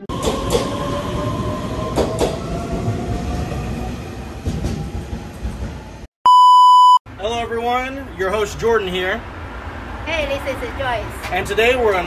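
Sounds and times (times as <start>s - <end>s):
electric train rumbling past: 0.0s - 6.1s.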